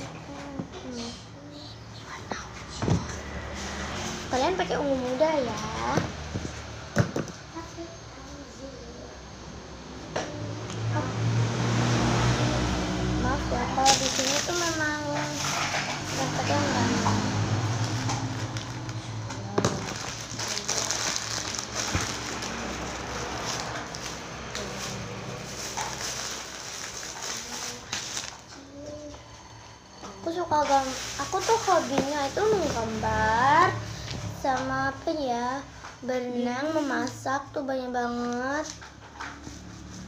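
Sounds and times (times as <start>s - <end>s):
room noise: 0.0s - 40.0s.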